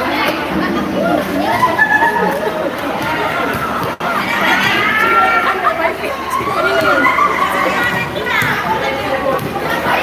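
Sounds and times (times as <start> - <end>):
players chattering and calling: 0.0 - 10.0.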